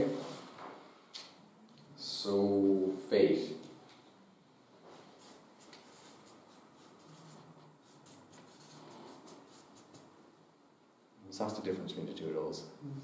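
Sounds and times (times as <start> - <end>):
marker pen writing on paper: 5.2 - 10.1.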